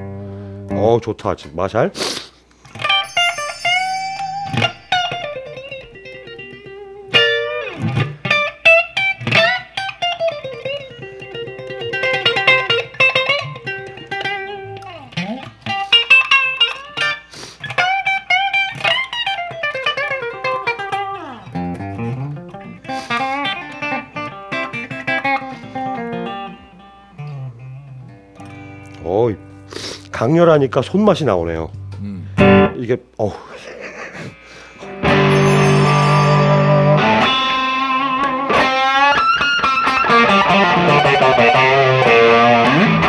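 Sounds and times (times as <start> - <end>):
clean electric guitar lead: 2.7 - 17.2, 18.0 - 30.2, 31.3 - 32.8, 34.8 - 43.0.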